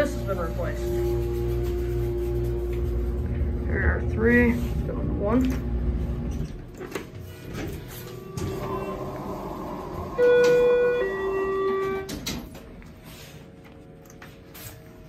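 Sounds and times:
elevator car humming: 0:00.0 - 0:12.6
two-note electronic chime: 0:08.2 - 0:12.1.

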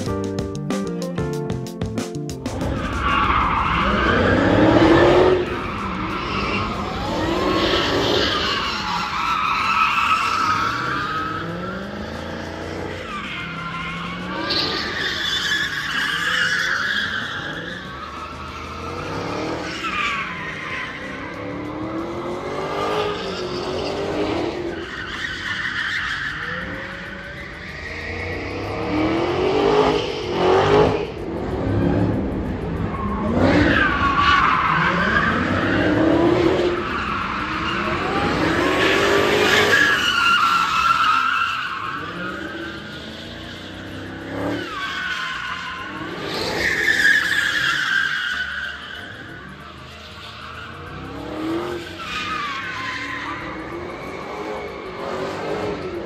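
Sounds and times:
car engines revving: 0:02.4 - 0:56.0
tyres squealing: 0:02.6 - 0:29.0, 0:32.6 - 0:56.0.

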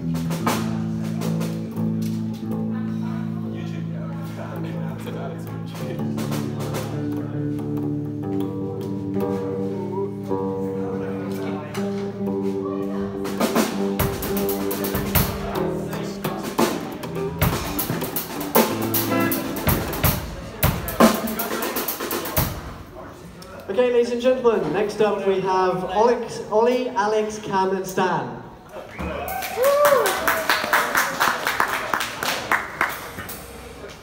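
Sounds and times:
drum kit hits: 0:00.0 - 0:02.0, 0:13.2 - 0:22.9
electric guitar: 0:00.0 - 0:22.5
bass guitar: 0:00.0 - 0:23.2.

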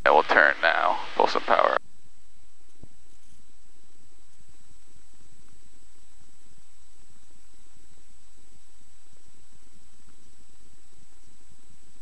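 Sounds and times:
propeller plane engine drone: 0:00.0 - 0:12.0.

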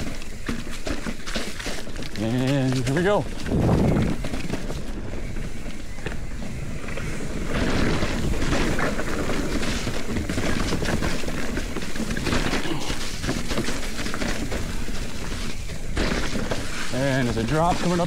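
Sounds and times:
bike rattling over rocks: 0:00.0 - 0:18.0
bike tyres crunching through dry leaves: 0:00.0 - 0:18.0
wind noise on microphone: 0:02.0 - 0:17.5.

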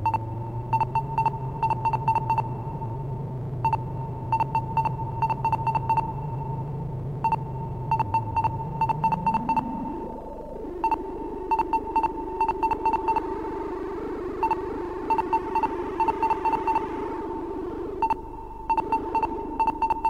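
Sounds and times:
high electronic beeps: 0:00.0 - 0:02.8, 0:03.6 - 0:06.6, 0:07.2 - 0:20.0
low synthesizer drone: 0:00.0 - 0:20.0.

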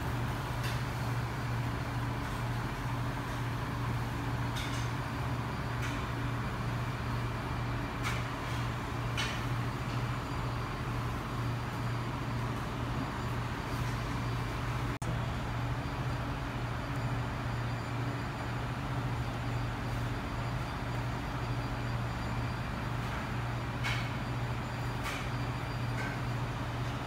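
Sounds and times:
low mechanical hum: 0:00.0 - 0:27.0.

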